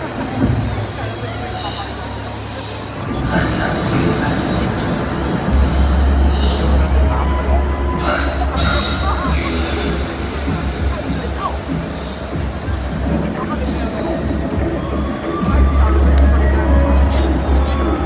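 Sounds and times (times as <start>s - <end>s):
crowd chatter: 0.0s - 18.0s
dark synthesizer chords: 0.0s - 18.0s
deep bass drone: 0.0s - 18.0s.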